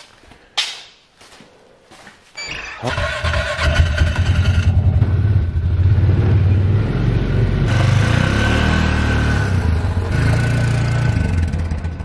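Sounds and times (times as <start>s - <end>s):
footsteps on concrete floor: 0.0s - 2.5s.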